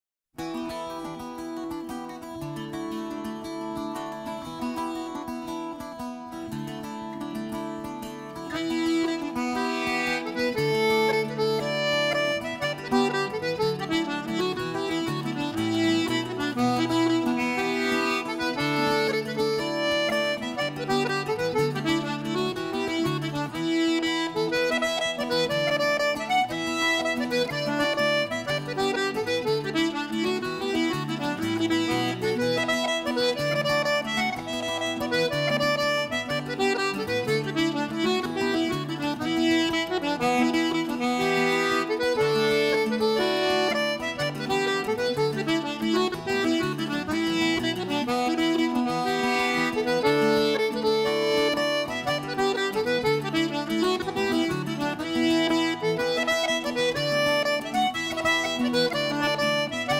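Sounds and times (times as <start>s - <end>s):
guitar chords: 0.4s - 59.9s
button accordion dance tune: 7.8s - 59.9s.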